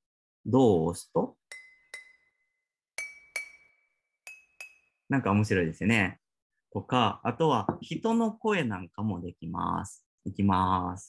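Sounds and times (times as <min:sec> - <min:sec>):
sampled glass bottle clinks: 0:01.5 - 0:05.0.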